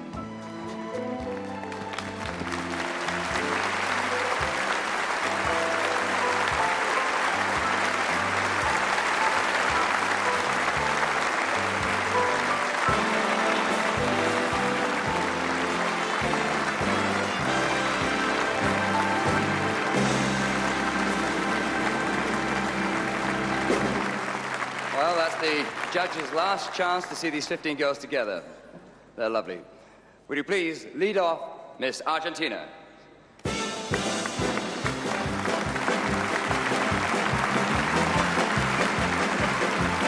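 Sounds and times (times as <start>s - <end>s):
band playing music: 0.3s - 24.6s, 33.5s - 40.0s
audience applauding: 1.2s - 27.6s, 33.6s - 40.0s.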